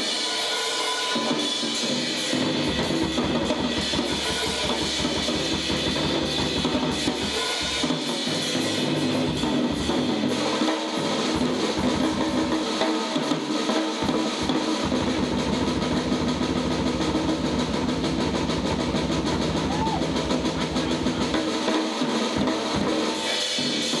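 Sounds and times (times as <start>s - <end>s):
fast even drumming: 1.1s - 24.0s
bass: 2.0s - 12.7s, 14.0s - 21.6s.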